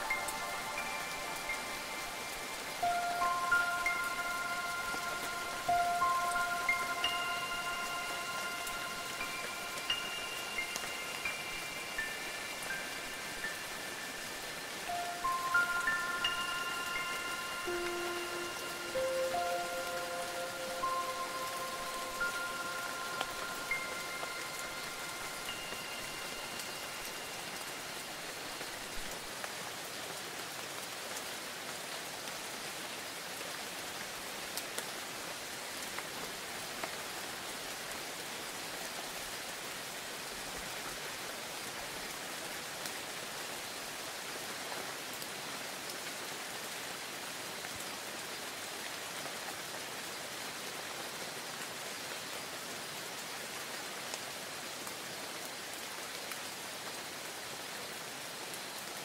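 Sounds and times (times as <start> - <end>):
chime-like tones: 0.0 - 29.1
steady rain falling: 0.0 - 59.0.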